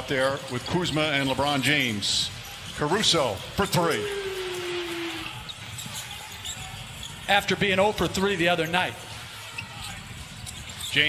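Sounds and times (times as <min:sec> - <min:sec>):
arena crowd noise: 0:00.0 - 0:11.0
voice holding a falling note: 0:03.9 - 0:05.4.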